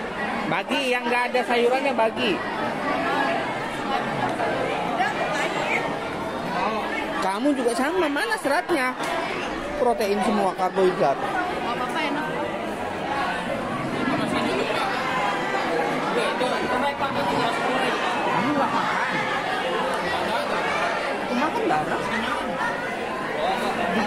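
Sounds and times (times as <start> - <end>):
students chattering: 0.0 - 24.0.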